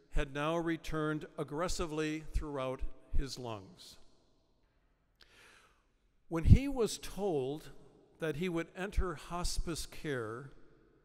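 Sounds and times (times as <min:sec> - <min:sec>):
soft breath at microphone: 0:04.7 - 0:05.9.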